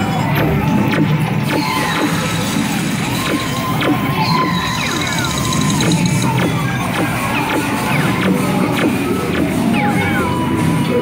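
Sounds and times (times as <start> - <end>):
soundtrack music: 0.0 - 11.0
rapid high beeping: 1.8 - 11.0
falling electronic tones: 3.0 - 11.0.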